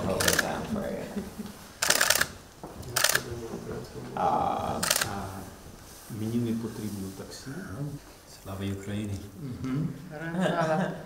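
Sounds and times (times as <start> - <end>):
camera shutters firing: 1.8 - 2.4, 3.0 - 3.3.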